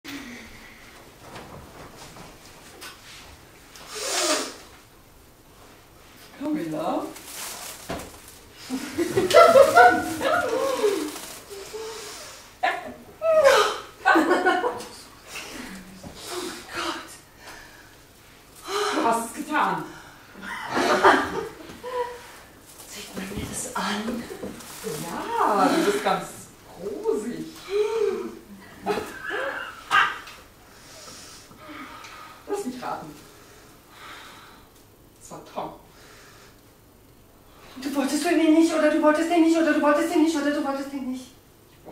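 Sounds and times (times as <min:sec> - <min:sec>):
faint movement noise: 0:00.2 - 0:12.6, 0:14.4 - 0:34.0
person sighing: 0:10.6 - 0:12.4, 0:27.6 - 0:28.6
woman's wordless vocal cries: 0:13.2 - 0:14.0, 0:27.6 - 0:30.2.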